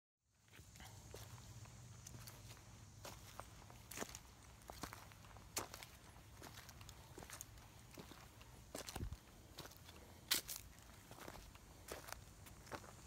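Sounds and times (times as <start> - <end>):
footsteps on dry leaves: 0.6 - 13.0.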